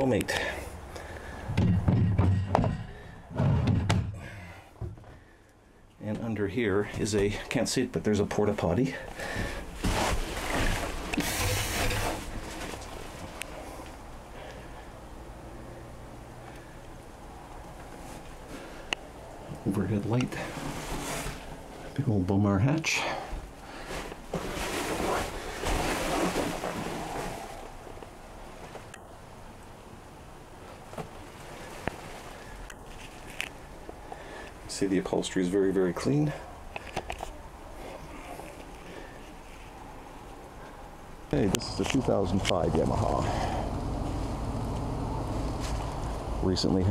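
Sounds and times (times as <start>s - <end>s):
rustling handling noise: 8.2s - 14.1s, 19.6s - 22.0s, 23.4s - 29.0s, 30.7s - 34.6s.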